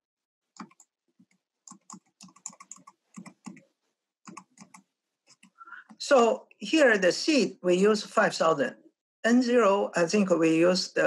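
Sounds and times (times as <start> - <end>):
faint keyboard tapping: 0.6 - 6.0.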